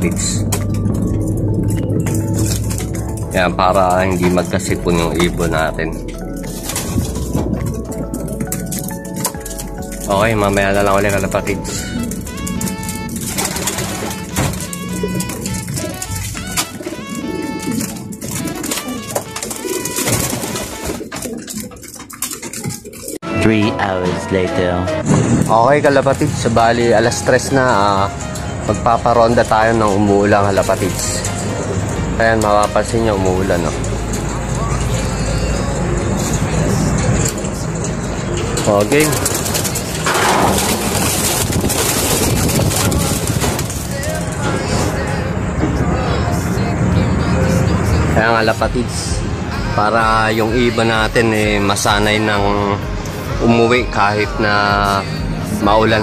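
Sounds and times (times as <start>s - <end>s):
low rumble: 0.0s - 16.5s
pigeons cooing: 0.0s - 23.2s, 28.0s - 45.4s
background music: 0.0s - 56.0s.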